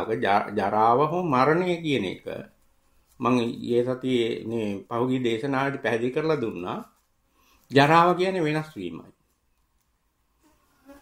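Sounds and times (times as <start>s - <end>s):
man speaking: 0.0s - 2.6s, 3.2s - 7.0s, 7.7s - 9.2s.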